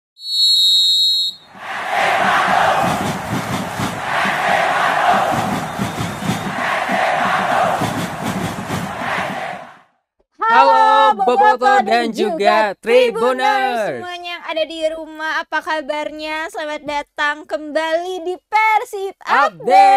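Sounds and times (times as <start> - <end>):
whistle blast: 0.2 - 1.5, 4.7 - 6.6
stadium crowd cheering and chanting: 1.5 - 14.0, 19.3 - 19.9.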